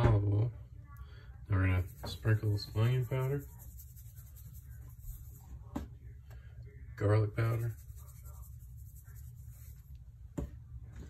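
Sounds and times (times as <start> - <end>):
powder shaken from spice container: 1.8 - 5.4, 7.4 - 9.8.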